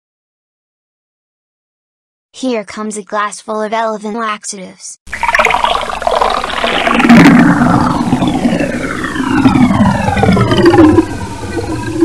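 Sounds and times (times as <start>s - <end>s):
cartoon liquid pouring and gurgling: 5.1s - 12.0s
tones gliding downward: 5.2s - 12.0s.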